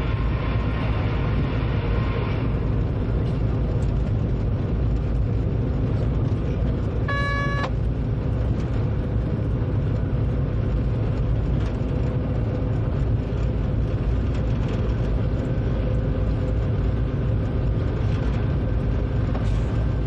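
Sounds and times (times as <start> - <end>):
train rumbling on track: 0.0 - 20.0
short tone: 7.0 - 7.8.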